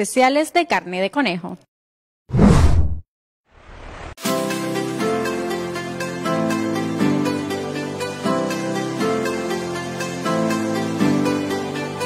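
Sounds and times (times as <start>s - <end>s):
faint rising swish: 2.3s - 3.0s
loud whoosh effect: 2.3s - 3.0s.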